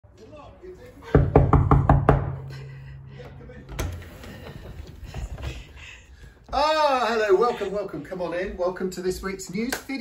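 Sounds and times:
knuckles knocking on door: 0:01.2 - 0:02.4.

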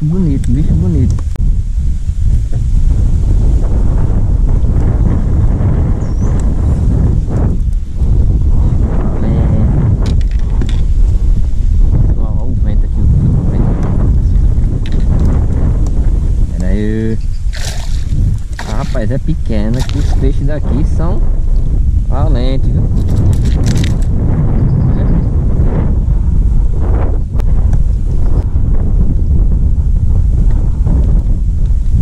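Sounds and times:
wind buffeting microphone: 0:00.0 - 0:32.0
water splashing around kayak: 0:17.4 - 0:20.5, 0:23.0 - 0:24.1.

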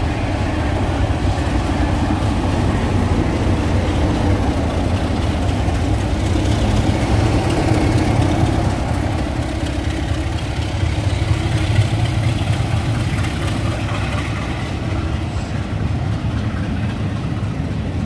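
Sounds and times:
diesel locomotive engine humming: 0:00.0 - 0:18.0
train rumbling past: 0:00.0 - 0:18.0.

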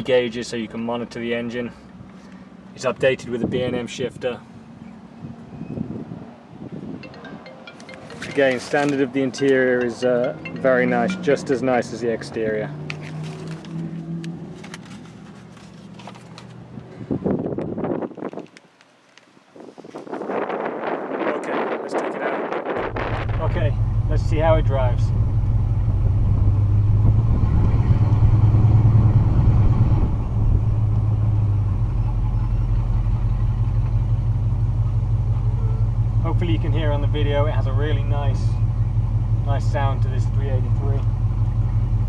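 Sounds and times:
car engine idling: 0:22.8 - 0:28.1, 0:30.0 - 0:42.0.

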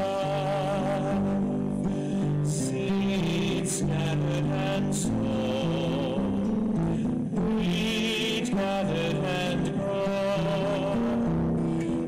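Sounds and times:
held chords: 0:00.0 - 0:12.0
person singing with vibrato: 0:00.0 - 0:12.0.

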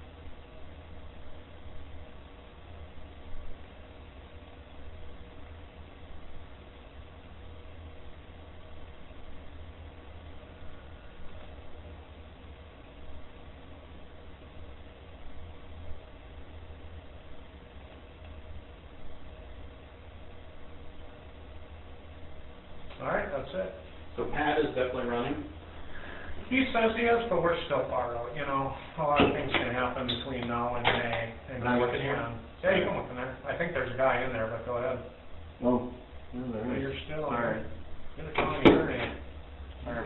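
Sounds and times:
faint steady tones: 0:00.0 - 0:40.0
steady hiss: 0:00.0 - 0:40.0.

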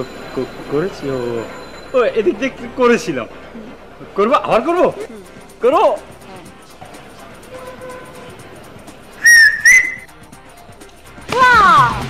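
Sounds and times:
faint background music: 0:00.0 - 0:12.0
short high whistle notes: 0:09.2 - 0:10.1.

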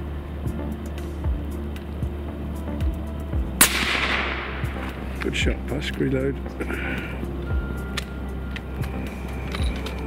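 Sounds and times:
rifle shot with echo: 0:03.6 - 0:04.9.

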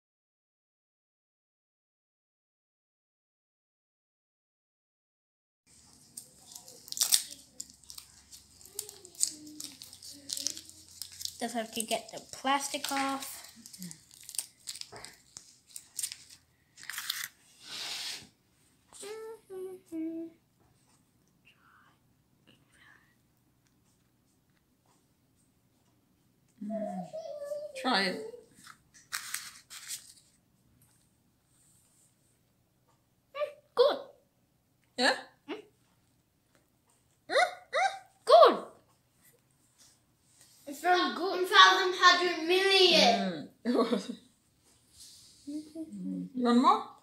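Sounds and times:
plastic wrapping crinkling and tearing: 0:05.7 - 0:17.4, 0:28.6 - 0:30.4
person humming: 0:19.0 - 0:20.4, 0:26.6 - 0:27.4, 0:45.5 - 0:46.4
child's rising vocal sounds: 0:26.6 - 0:28.5.

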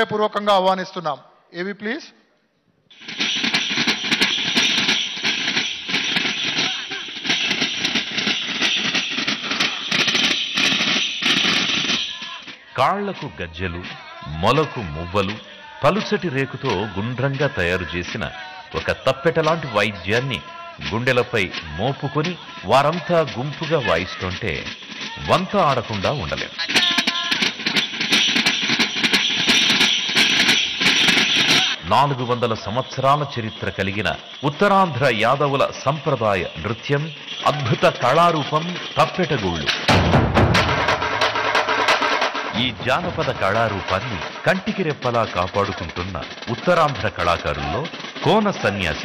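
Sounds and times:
frame drums beaten by hand: 0:02.9 - 0:12.6, 0:37.2 - 0:49.0
ankle bells jingling: 0:02.9 - 0:49.0
frame drums beaten fast: 0:02.9 - 0:49.0
voices: 0:06.0 - 0:08.4, 0:12.0 - 0:27.9, 0:31.4 - 0:39.9, 0:41.2 - 0:49.0.

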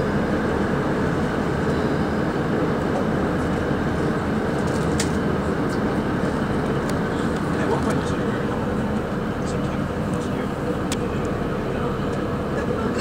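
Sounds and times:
diesel train rumble: 0:00.0 - 0:13.0.

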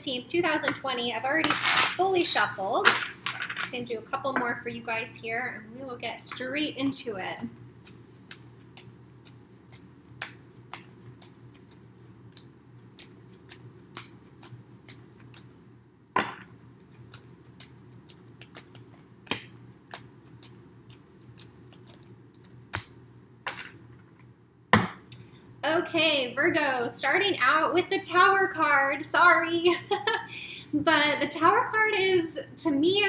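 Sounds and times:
low steady hum: 0:00.0 - 0:33.0
cards being shuffled: 0:07.4 - 0:15.6, 0:16.2 - 0:23.0
card deck snapping: 0:08.3 - 0:15.5, 0:16.2 - 0:23.0.

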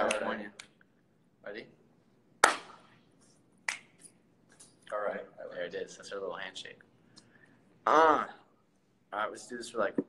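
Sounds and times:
palm slap: 0:02.4 - 0:03.0, 0:03.6 - 0:04.0.

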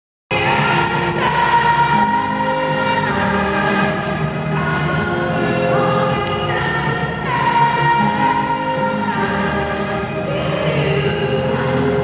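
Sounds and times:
woman singing a pop ballad: 0:00.3 - 0:12.0.

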